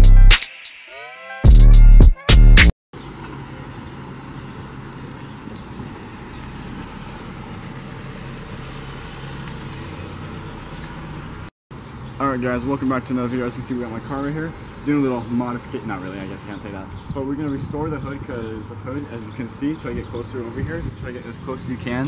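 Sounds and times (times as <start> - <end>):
loud electronic music: 0.0 - 2.7.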